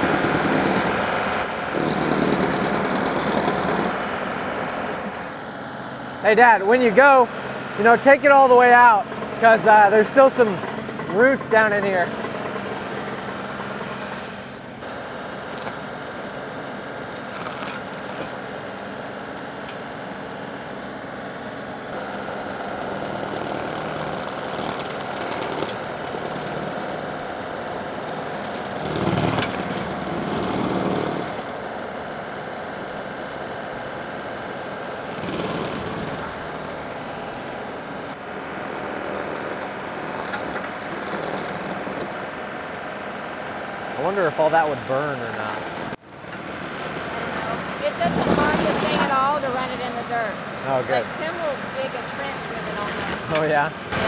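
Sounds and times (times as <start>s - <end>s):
stump grinder chewing roots: 0.0s - 5.2s, 17.1s - 18.4s, 21.9s - 31.5s, 35.0s - 42.8s, 43.4s - 51.4s, 52.4s - 54.0s
tractor diesel engine running: 0.0s - 54.0s.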